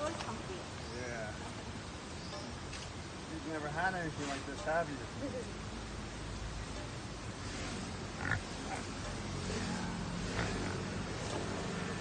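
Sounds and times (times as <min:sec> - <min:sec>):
pig calling: 0:07.4 - 0:11.6.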